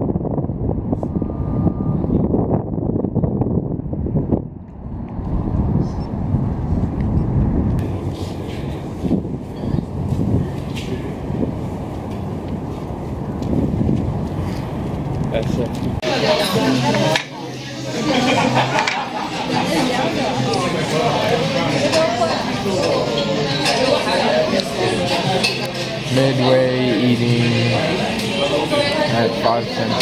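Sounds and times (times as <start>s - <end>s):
wind buffeting microphone: 0.0s - 16.1s.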